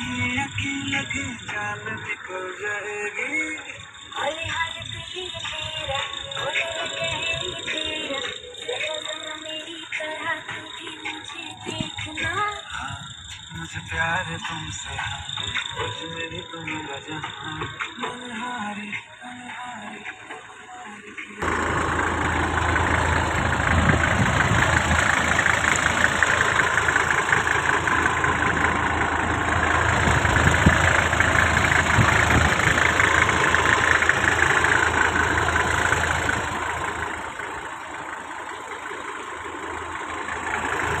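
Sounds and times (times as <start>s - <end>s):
engine idling with clatter: 0.0s - 41.0s.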